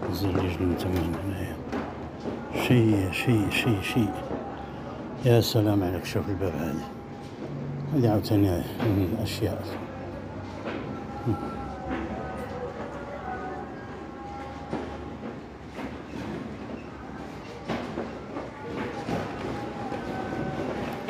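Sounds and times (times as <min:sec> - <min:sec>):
exhibition hall hum: 0:00.0 - 0:21.0.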